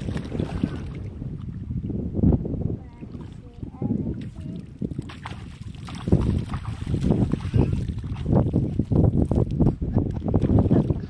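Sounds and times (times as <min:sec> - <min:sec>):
splashing in shallow water: 0:00.0 - 0:01.7, 0:03.0 - 0:11.0
wind rumbling on microphone: 0:00.0 - 0:11.0.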